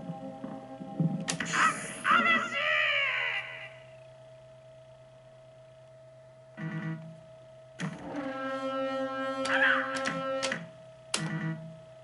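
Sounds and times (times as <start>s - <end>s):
faint electronic hum: 0.0s - 12.0s
falling voice-like cry: 9.5s - 10.0s.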